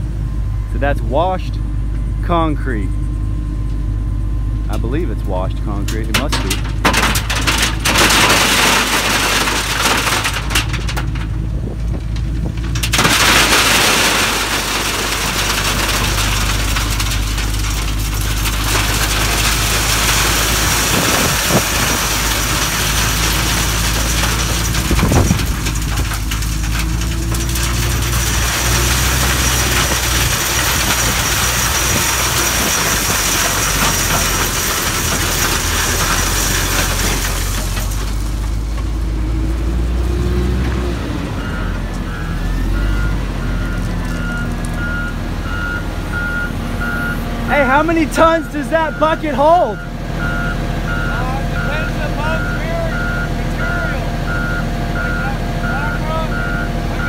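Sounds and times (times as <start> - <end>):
diesel engine running: 0.0 - 57.0
gravel pouring into truck bed: 5.8 - 40.8, 47.5 - 49.8
reversing beeper: 48.2 - 57.0.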